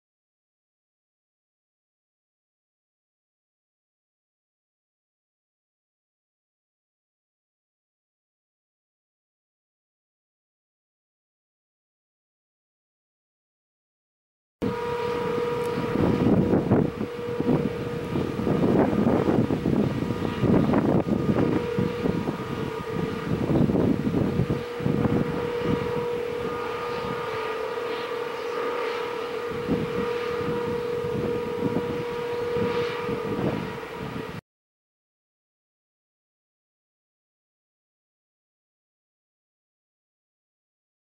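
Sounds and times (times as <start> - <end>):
warning siren steady note: 14.6 - 34.4
wind buffeting microphone: 14.6 - 34.4.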